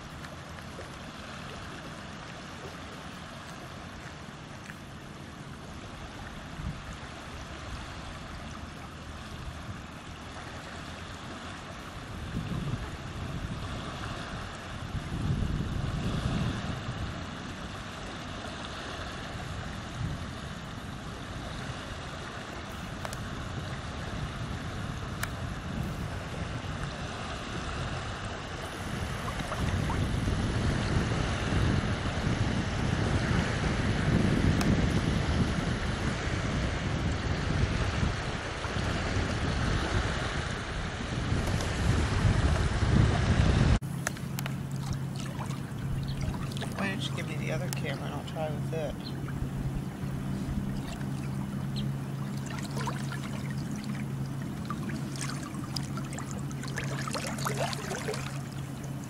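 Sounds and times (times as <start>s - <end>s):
small waves washing on shore: 0.0s - 59.0s
wind buffeting microphone: 6.2s - 8.2s, 11.8s - 18.5s, 19.2s - 59.0s.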